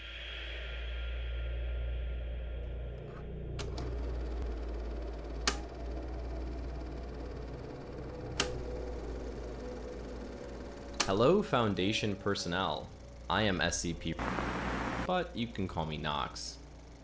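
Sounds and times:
steady low hum with rapid ticking: 3.0 - 17.0
sharp clicks: 8.3 - 8.6.

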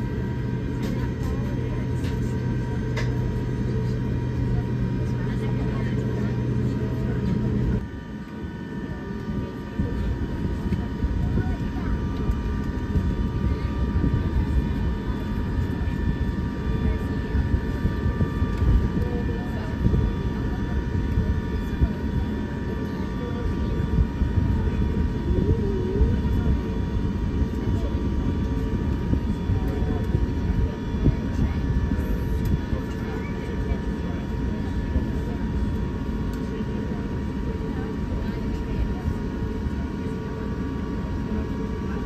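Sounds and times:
airliner cabin rumble: 0.0 - 42.0
high engine whine: 0.0 - 42.0
low hum: 0.0 - 42.0.

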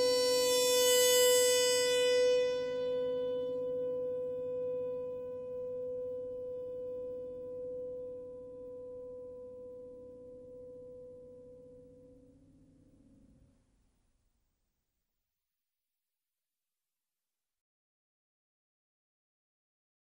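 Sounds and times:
held horn note: 0.0 - 6.9.

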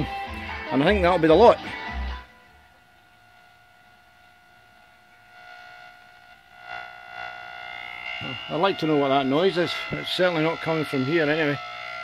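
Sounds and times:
high-pitched electrical buzz: 0.0 - 12.0.

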